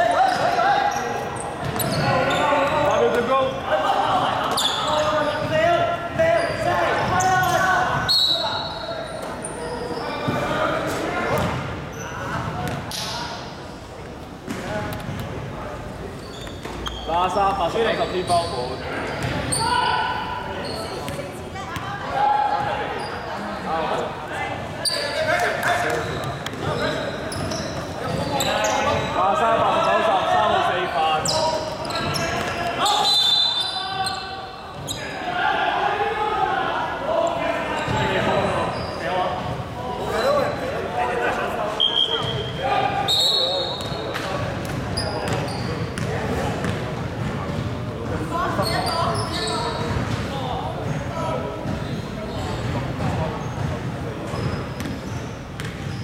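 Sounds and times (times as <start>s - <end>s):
players talking: 0.0s - 56.0s.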